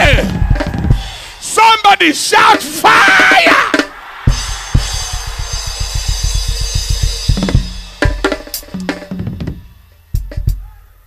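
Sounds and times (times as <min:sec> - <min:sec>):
fast low drum strokes: 0:00.0 - 0:01.2, 0:03.2 - 0:10.7
ringing cymbals: 0:04.3 - 0:10.9.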